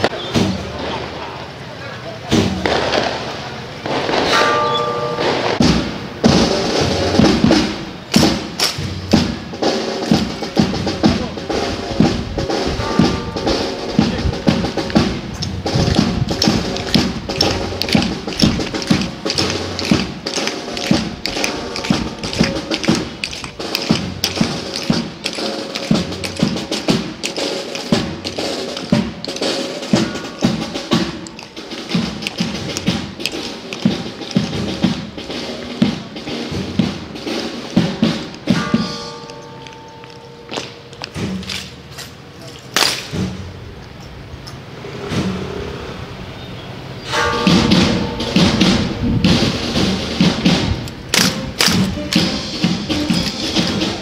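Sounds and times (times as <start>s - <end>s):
snare and bass drum march: 2.3s - 4.5s, 5.2s - 39.8s, 47.4s - 54.0s
instruments holding steady notes: 4.4s - 42.7s, 47.1s - 54.0s.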